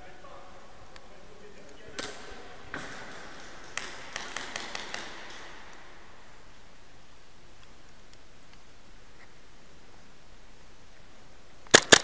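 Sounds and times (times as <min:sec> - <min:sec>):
airsoft guns firing: 0:02.0 - 0:06.4, 0:11.7 - 0:12.0.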